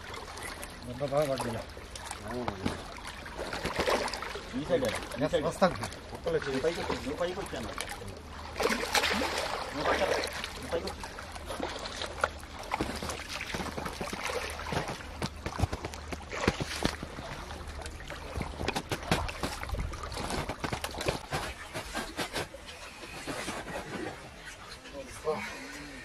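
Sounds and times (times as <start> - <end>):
water sloshing and splashing: 0.0 - 26.0.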